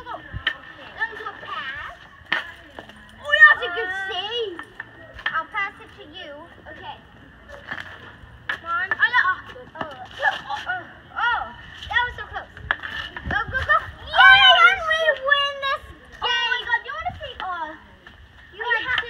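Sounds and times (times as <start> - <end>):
hockey sticks clacking on asphalt: 0.0 - 19.0
children calling out: 13.4 - 17.0.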